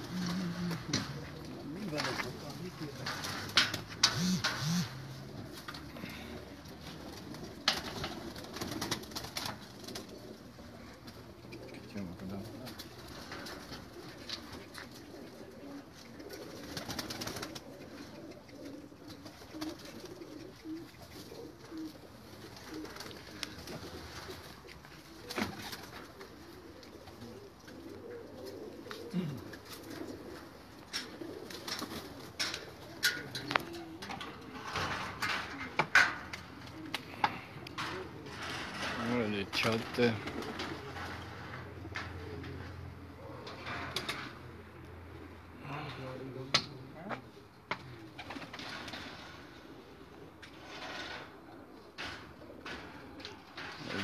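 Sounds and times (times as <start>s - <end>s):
pigeons cooing: 0.0s - 54.0s.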